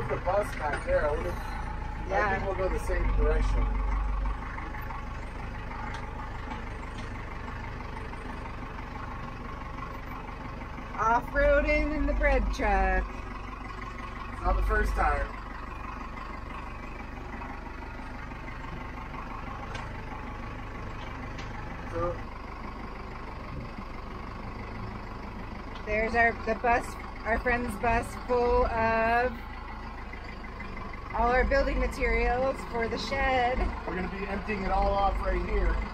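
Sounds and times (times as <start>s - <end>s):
truck driving over rough ground: 0.0s - 35.9s
truck engine running: 0.0s - 35.9s.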